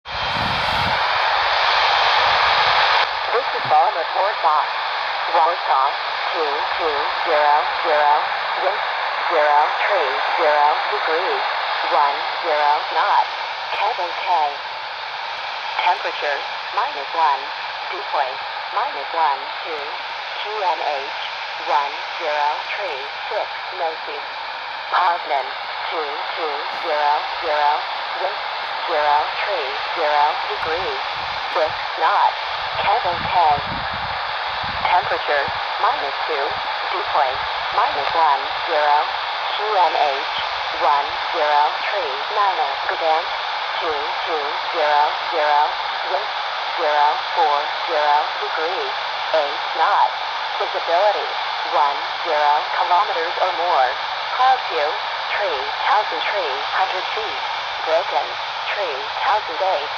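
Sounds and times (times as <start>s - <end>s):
radio static hiss: 0.1s - 59.9s
broadcast voice through speaker: 0.3s - 1.1s, 3.3s - 14.6s, 15.8s - 24.3s, 24.9s - 59.9s.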